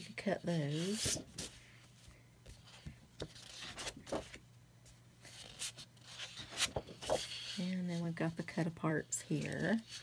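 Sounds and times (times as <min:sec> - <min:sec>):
paper rustling: 0:02.5 - 0:04.4, 0:05.2 - 0:07.6.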